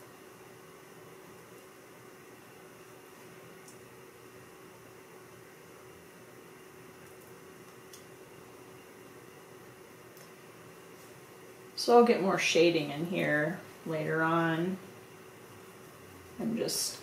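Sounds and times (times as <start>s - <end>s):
faint room hiss: 0.0s - 17.0s
low steady hum: 0.0s - 17.0s.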